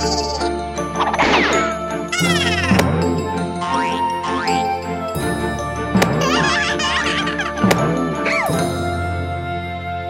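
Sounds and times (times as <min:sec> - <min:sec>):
bouncy cartoon music: 0:00.0 - 0:10.0
child giggling: 0:02.1 - 0:02.8, 0:06.2 - 0:07.7.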